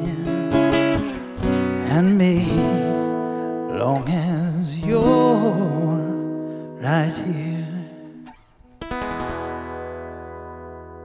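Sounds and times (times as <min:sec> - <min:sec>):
man singing wordlessly: 0:00.0 - 0:08.3
acoustic guitar strumming: 0:00.0 - 0:11.0.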